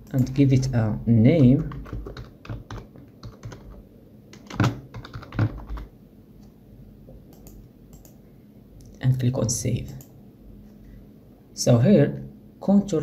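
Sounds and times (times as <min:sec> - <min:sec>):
keyboard typing clicks: 0:01.4 - 0:05.9, 0:07.3 - 0:08.2.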